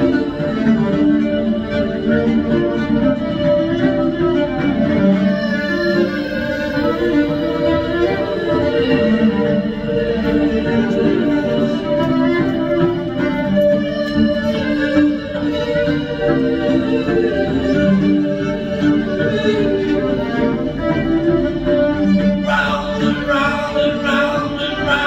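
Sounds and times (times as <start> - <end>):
fiddle playing a melody: 0.0 - 25.0
man's voice: 22.4 - 25.0.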